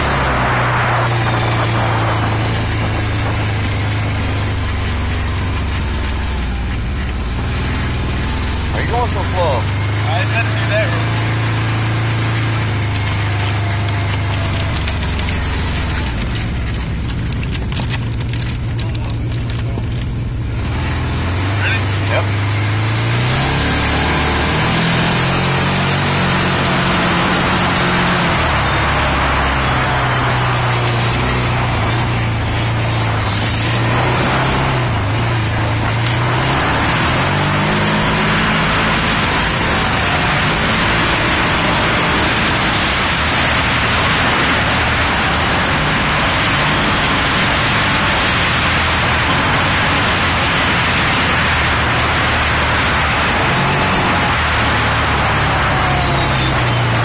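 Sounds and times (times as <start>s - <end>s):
utility vehicle engine running: 0.0s - 57.0s.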